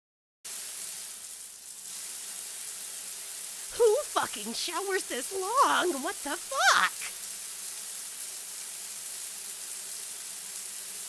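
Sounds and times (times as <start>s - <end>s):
shower water spraying: 0.5s - 11.0s.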